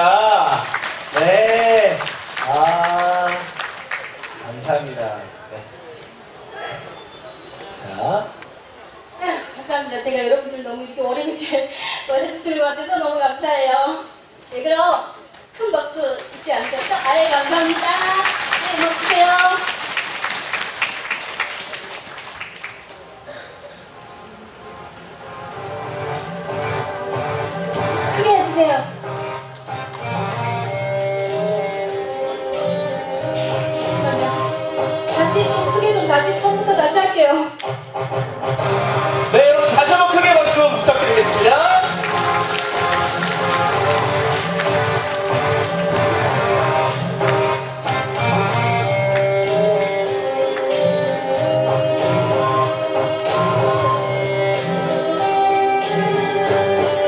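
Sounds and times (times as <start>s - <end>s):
instrumental music over sound system: 25.2s - 36.9s, 37.6s - 57.0s.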